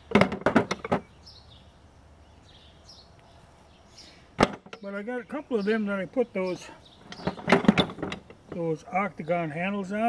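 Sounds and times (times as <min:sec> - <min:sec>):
wooden handles clacking: 0:07.0 - 0:08.8.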